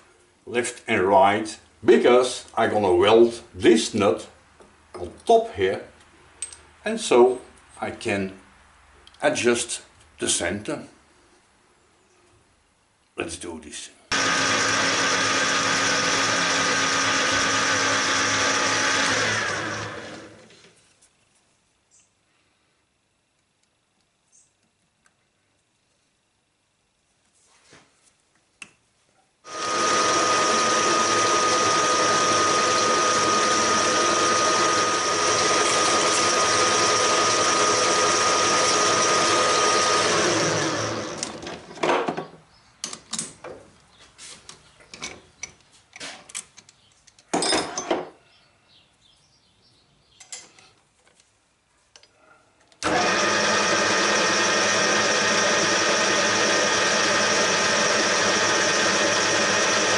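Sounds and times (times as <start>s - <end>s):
metal lathe whining: 14.1s - 20.5s, 29.5s - 41.6s, 52.8s - 59.9s.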